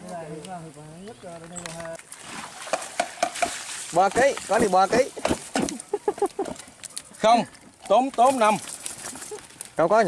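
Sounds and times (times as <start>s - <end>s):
water splashing and running: 1.8s - 6.8s, 7.8s - 9.8s.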